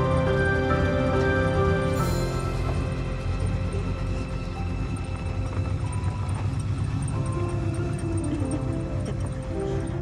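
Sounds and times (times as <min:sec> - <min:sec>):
car engine running: 0:00.0 - 0:10.0
faint music: 0:00.0 - 0:10.0.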